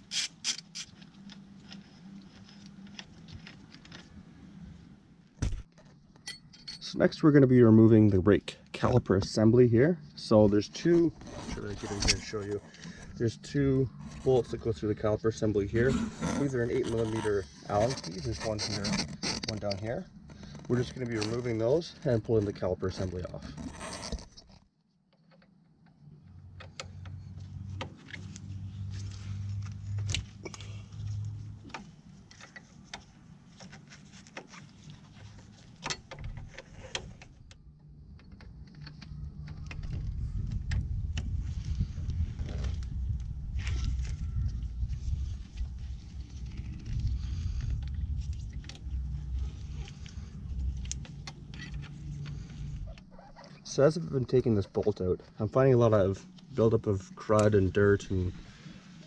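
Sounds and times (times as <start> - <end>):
metal tools clinking: 6.2 - 7.0
low steady rumble: 26.2 - 59.0.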